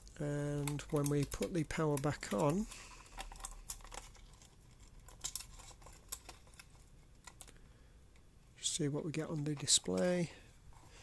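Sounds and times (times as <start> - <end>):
fingers clicking wires and connectors: 0.0 - 4.1.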